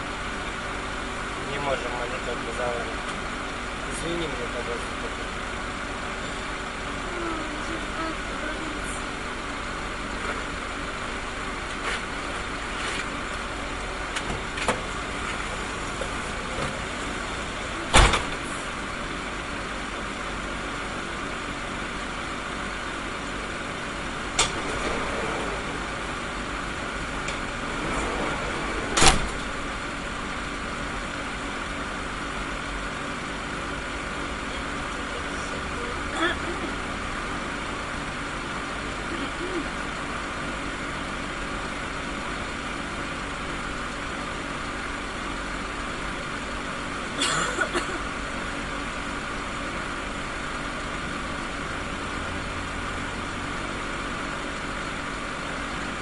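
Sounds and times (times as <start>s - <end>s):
minibus engine idling: 0.0s - 56.0s.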